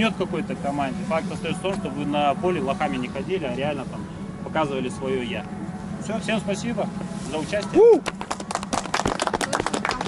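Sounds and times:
people applauding: 7.9 - 10.0.

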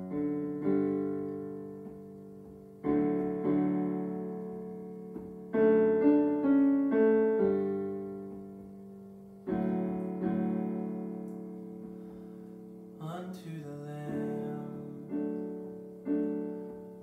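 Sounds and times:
digital piano chords: 0.0 - 17.0.

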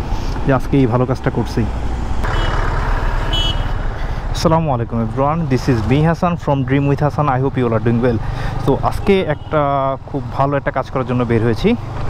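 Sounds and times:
motorcycle engine rumble: 0.0 - 12.0.

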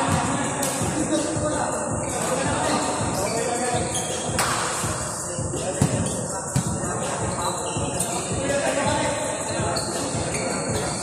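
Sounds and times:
basketballs bouncing on gym floor: 0.0 - 0.4, 5.7 - 6.8
people chattering in a hall: 0.0 - 11.0.

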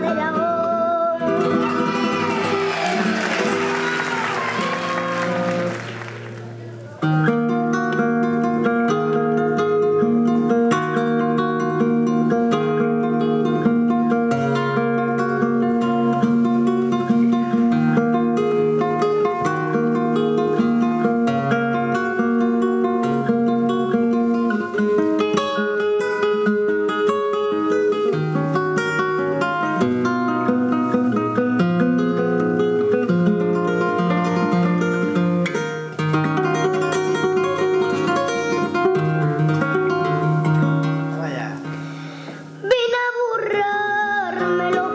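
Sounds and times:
flamenco guitar playing: 0.0 - 44.9.

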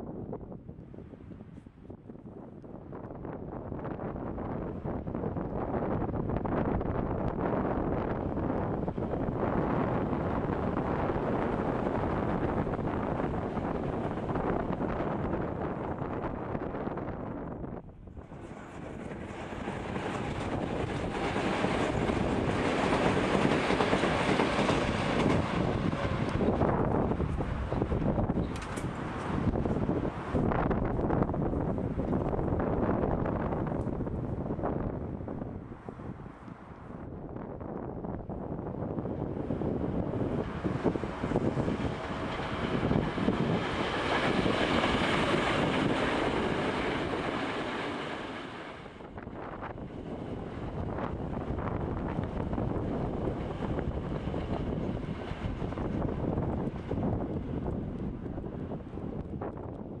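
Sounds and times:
wind buffeting microphone: 0.0 - 60.0
electric train passing: 6.7 - 17.5, 18.2 - 35.0, 39.0 - 59.6.

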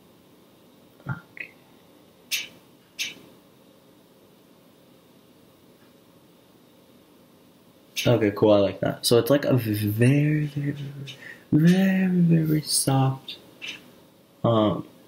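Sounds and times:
hissy breaths: 11.0 - 11.5.

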